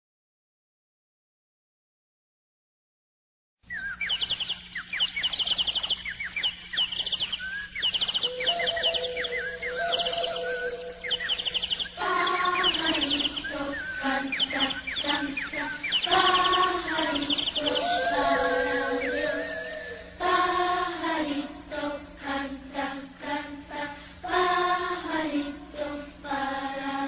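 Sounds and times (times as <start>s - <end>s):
birdsong chirps: 3.6s - 21.2s
instrumental children's music: 3.9s - 27.0s.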